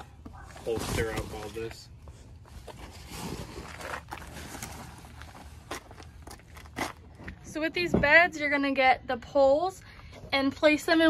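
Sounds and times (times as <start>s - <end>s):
canvas cover rustling and scraping: 0.4s - 1.8s, 2.4s - 7.0s.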